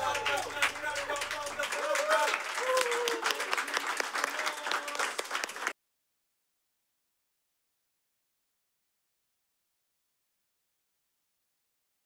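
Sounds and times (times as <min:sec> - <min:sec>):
voices: 0:00.0 - 0:05.1
group clapping: 0:00.0 - 0:05.8.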